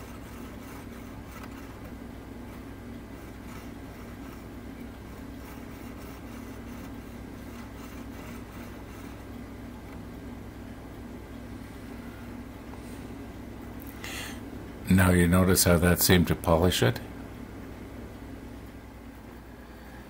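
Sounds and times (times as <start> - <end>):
cotton bud scratching on chain: 0.0 - 9.3
low electrical hum: 0.0 - 20.0.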